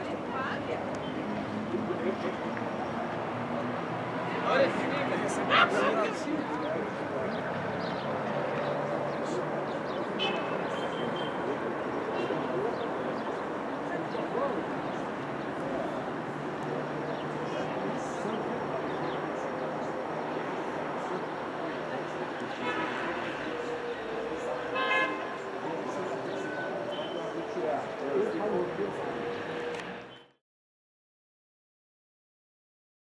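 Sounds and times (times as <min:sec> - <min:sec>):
distant voices murmuring: 0:00.0 - 0:30.3.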